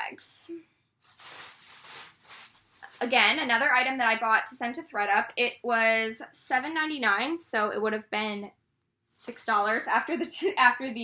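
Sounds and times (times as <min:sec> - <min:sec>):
fabric rustling: 0:01.0 - 0:03.6.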